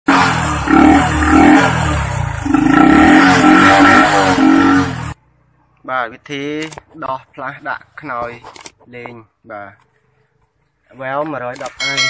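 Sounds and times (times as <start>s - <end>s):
motorcycle engine revving: 0.1s - 5.3s.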